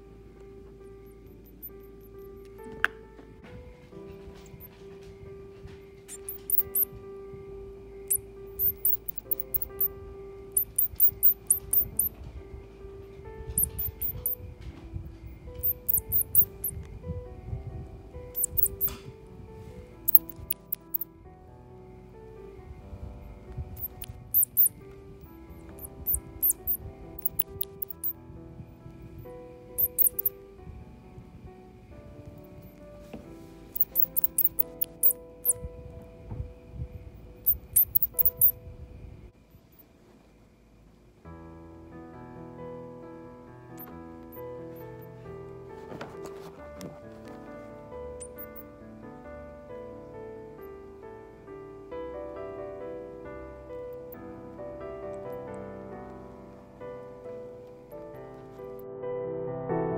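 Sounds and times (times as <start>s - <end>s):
music with held notes: 0.0s - 39.3s
baby mice squeaking: 6.1s - 6.9s, 8.1s - 10.0s, 10.6s - 12.2s, 13.5s - 14.4s, 15.5s - 16.8s, 18.4s - 19.0s, 20.1s - 21.0s, 23.8s - 28.1s, 29.8s - 30.4s, 33.8s - 35.6s, 37.4s - 38.6s, 48.2s - 48.6s.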